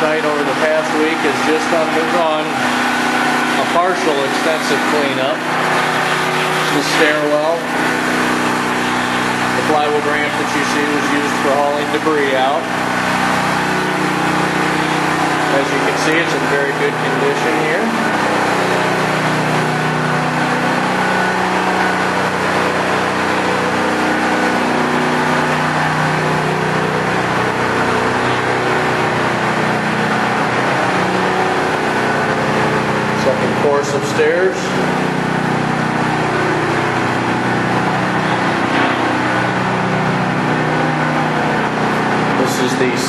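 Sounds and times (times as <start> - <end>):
generator engine drone: 0.0 - 43.0.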